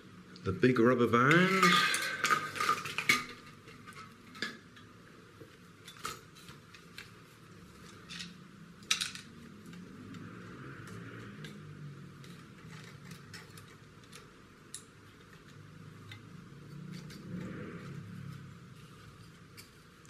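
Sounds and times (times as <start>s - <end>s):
plastic parts clicking and rattling: 1.3s - 5.0s, 5.8s - 20.0s.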